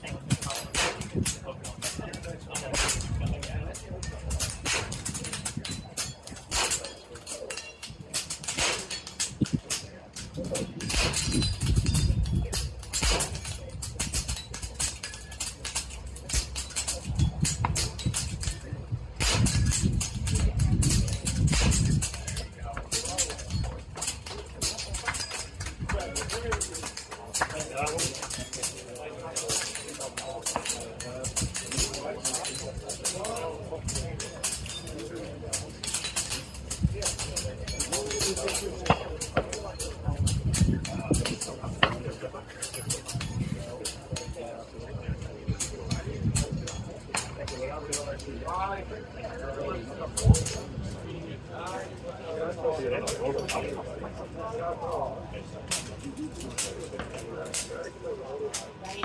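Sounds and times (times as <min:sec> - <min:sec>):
murmur of voices: 0:00.0 - 0:59.0
air rifles firing: 0:00.3 - 0:07.0, 0:08.1 - 0:09.8, 0:10.6 - 0:18.4, 0:19.2 - 0:22.2.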